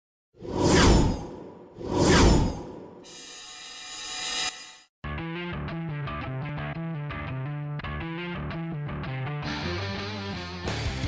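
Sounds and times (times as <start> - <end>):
whooshing sound effect: 0.4 - 3.3.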